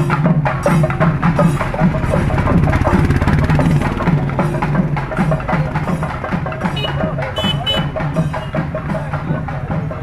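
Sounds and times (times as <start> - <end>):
drums playing fast roll: 0.0 - 10.0.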